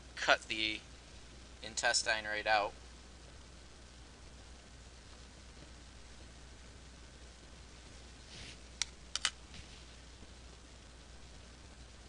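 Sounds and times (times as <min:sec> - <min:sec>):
faint low hum: 0:00.0 - 0:12.0
scissors snipping clicks: 0:08.8 - 0:09.4.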